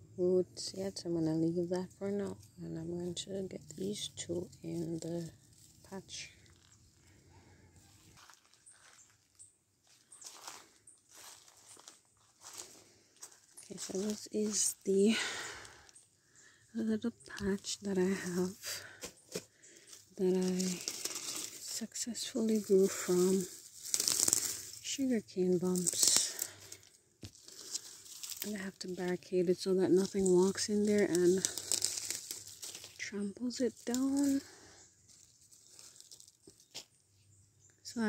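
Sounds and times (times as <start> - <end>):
footsteps on grass and dry leaves: 7.9 - 16.0, 17.3 - 37.0.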